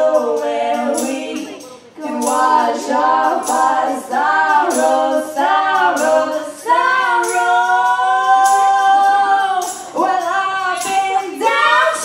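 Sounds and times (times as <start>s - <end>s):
women singing in harmony: 0.0s - 12.0s.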